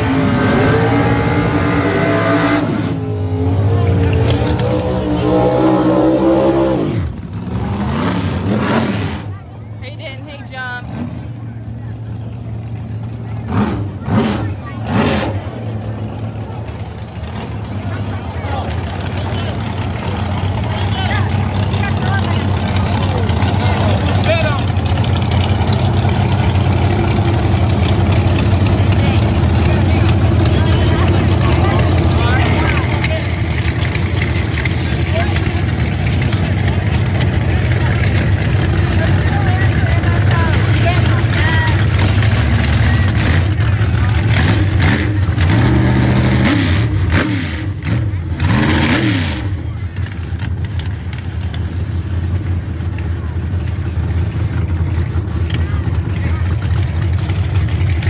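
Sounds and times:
race car engines rumbling: 0.0s - 58.0s.

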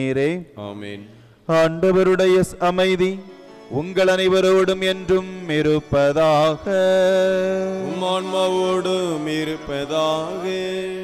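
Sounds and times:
priest chanting prayer: 0.0s - 11.0s
keyboard drone: 1.8s - 11.0s.

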